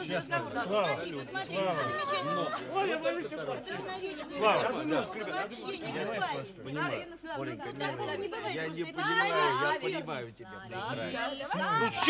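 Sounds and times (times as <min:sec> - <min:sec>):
people talking and exclaiming: 0:00.0 - 0:12.0.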